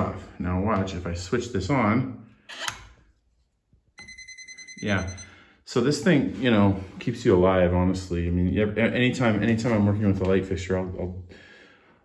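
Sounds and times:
voltage tester rapid beeping: 0:04.0 - 0:05.3.

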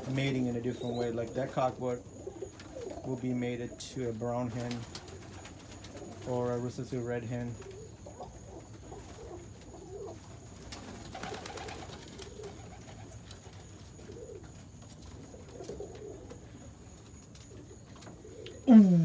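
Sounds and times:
rustle: 0:00.0 - 0:18.8
pigeons cooing: 0:00.0 - 0:19.0.

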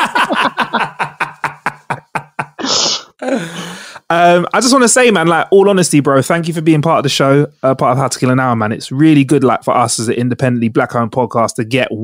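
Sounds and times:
man laughing: 0:00.0 - 0:03.8
breathy exhale: 0:02.6 - 0:04.1.

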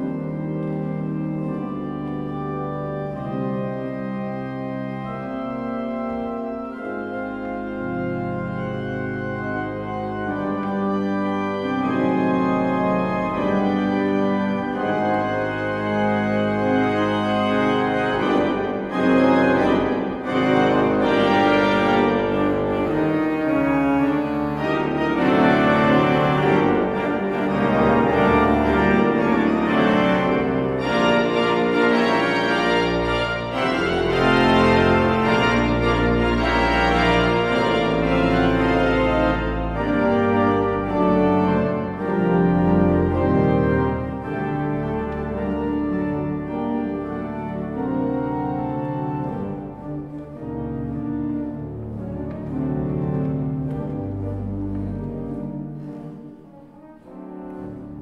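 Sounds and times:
deep organ pedal bass notes: 0:00.0 - 0:58.0
pipe organ sustained chords: 0:00.0 - 0:58.0.

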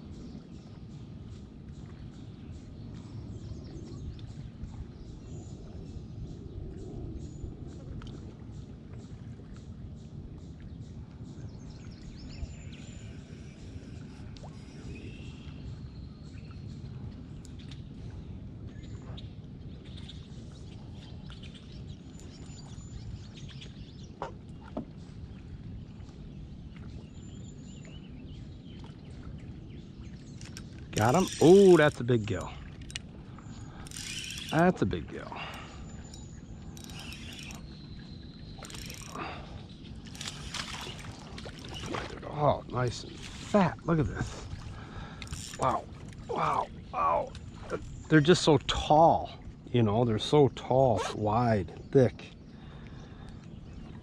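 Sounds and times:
low background rumble: 0:00.0 - 0:50.6.

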